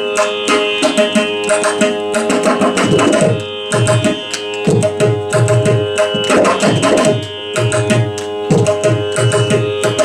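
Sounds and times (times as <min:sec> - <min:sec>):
mridangam drum strokes: 0:00.0 - 0:10.0.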